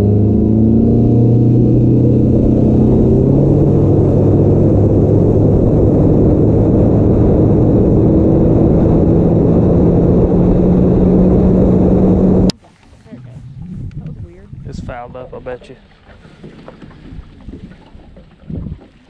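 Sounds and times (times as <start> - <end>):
outboard motor droning: 0.0 - 19.0.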